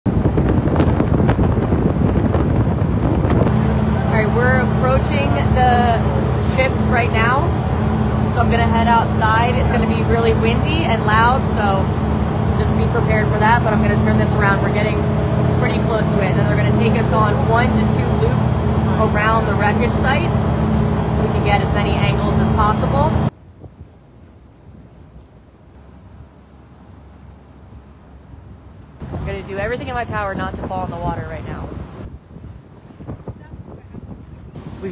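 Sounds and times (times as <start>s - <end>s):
wind buffeting microphone: 0.0s - 34.9s
rushing water: 0.1s - 23.4s, 25.6s - 34.9s
boat engine: 0.1s - 34.9s.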